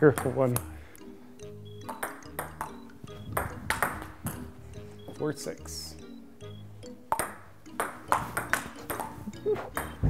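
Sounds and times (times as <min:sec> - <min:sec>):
ping-pong ball clicking: 0:01.7 - 0:04.5, 0:07.1 - 0:09.2, 0:09.8 - 0:10.0.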